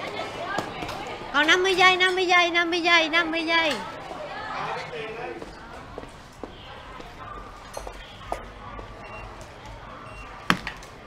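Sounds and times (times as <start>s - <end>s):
barcode scanner beeps: 9.0s - 9.4s, 10.0s - 10.5s.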